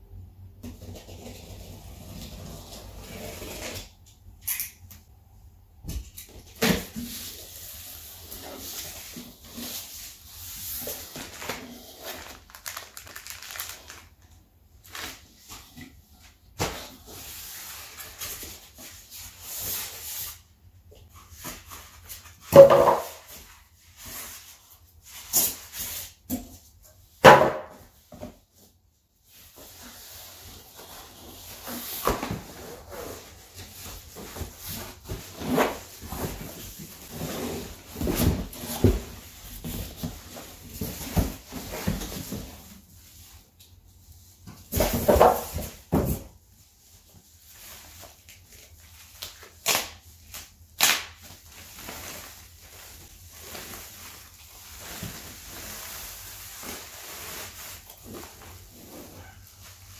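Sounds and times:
cardboard and foam rustling: 6.3s - 50.4s, 51.2s - 59.9s.

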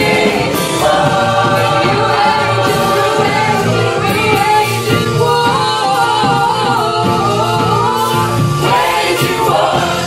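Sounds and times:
gospel singing: 0.0s - 10.0s
steady beat: 0.0s - 10.0s.

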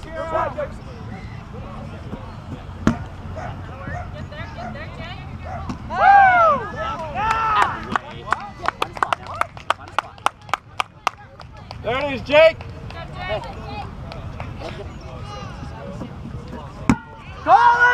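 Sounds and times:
kickball thwack: 2.8s - 3.1s, 16.9s - 17.1s
players yelling: 5.9s - 8.0s, 17.2s - 17.9s
sharp handclaps: 6.9s - 13.0s.

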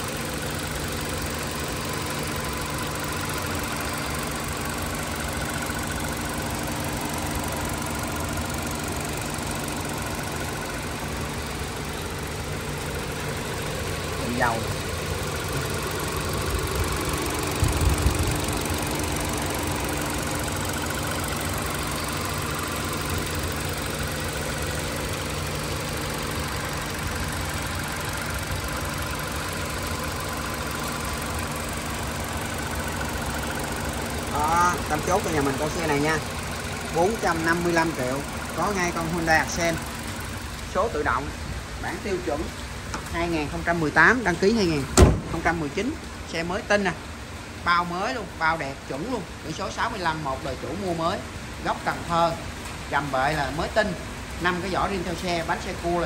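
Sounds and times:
car engine idling: 0.0s - 56.0s.

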